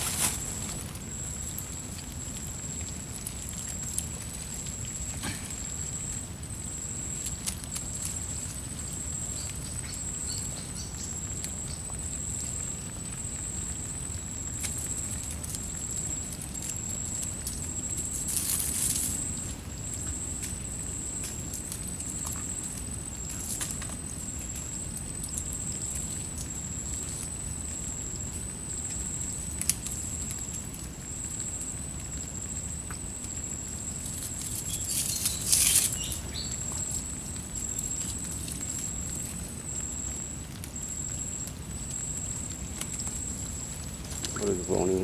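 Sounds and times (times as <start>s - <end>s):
net clicks and rustles: 14.6s - 25.4s, 34.0s - 39.5s.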